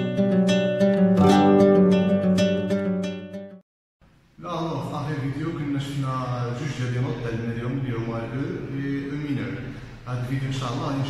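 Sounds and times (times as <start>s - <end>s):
man speaking: 4.4s - 11.0s.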